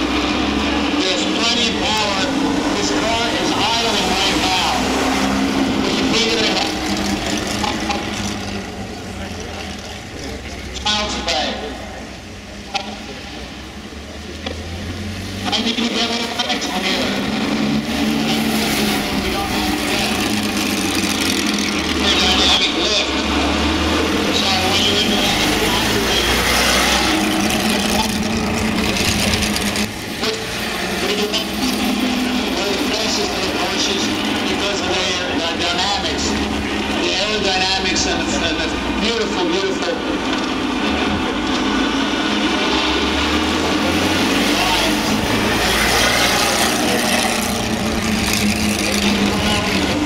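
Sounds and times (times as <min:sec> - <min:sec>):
car engine low drone: 0:00.0 - 0:50.0
voices: 0:00.3 - 0:50.0
people talking: 0:00.6 - 0:05.1, 0:05.7 - 0:08.0, 0:08.9 - 0:14.6, 0:15.4 - 0:17.4, 0:19.0 - 0:20.6, 0:21.8 - 0:23.4, 0:24.2 - 0:40.3, 0:44.4 - 0:47.6, 0:48.4 - 0:50.0.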